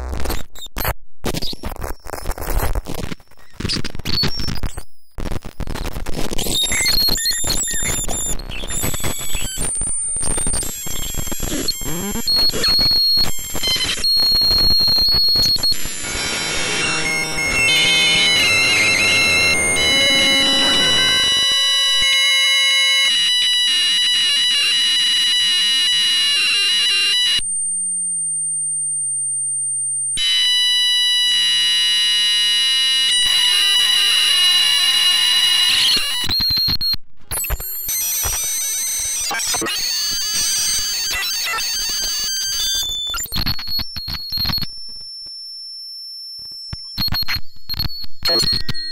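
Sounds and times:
electronic crackling and glitching: 0.0 - 27.2, 33.1 - 44.7, 46.8 - 48.9
high electronic whistle: 12.3 - 27.4
high steady electronic tones: 13.2 - 24.0.

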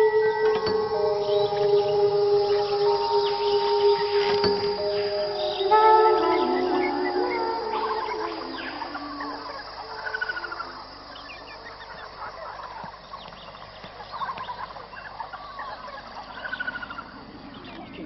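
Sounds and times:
bird chirps: 0.0 - 18.0
warbling gobble-like bird calls: 0.0 - 18.0.

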